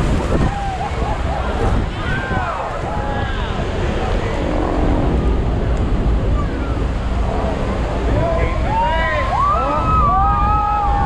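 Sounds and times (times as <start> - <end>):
passengers' voices and shouts: 0.0 - 4.7, 6.3 - 11.0
waterfall roaring: 0.0 - 11.0
wind buffeting microphone: 0.0 - 11.0.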